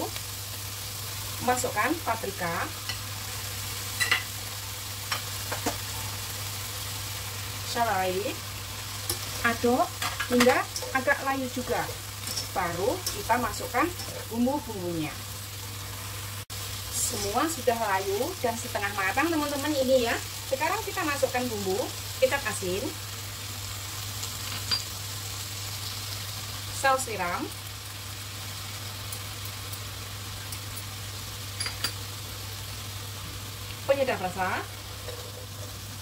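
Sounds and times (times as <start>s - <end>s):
vegetables sizzling in hot oil: 0.0s - 36.0s.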